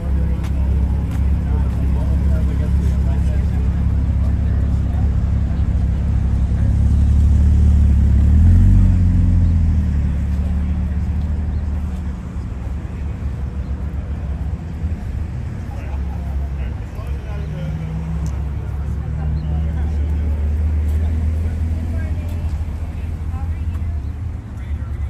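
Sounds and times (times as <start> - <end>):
people talking faintly: 0.0 - 25.0.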